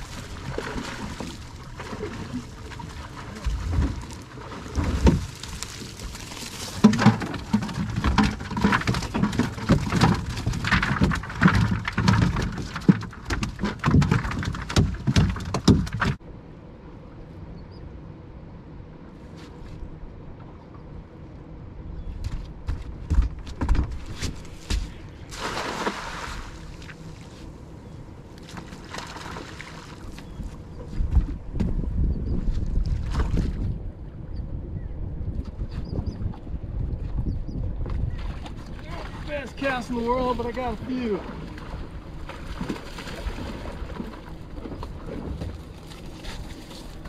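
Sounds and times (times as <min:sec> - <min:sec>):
wet netting pulled aboard: 0:00.0 - 0:16.2, 0:38.3 - 0:47.0
net splashing into water: 0:25.3 - 0:26.9.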